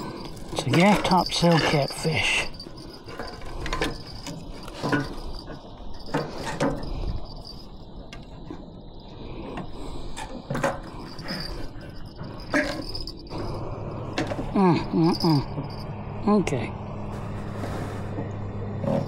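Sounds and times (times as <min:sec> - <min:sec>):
knocks and rattles on a deck: 0:00.0 - 0:08.6
insects chirring: 0:00.0 - 0:17.3.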